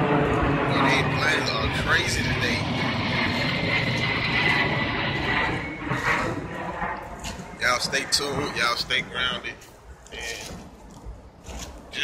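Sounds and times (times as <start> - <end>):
airplane passing overhead: 0.0 - 12.0.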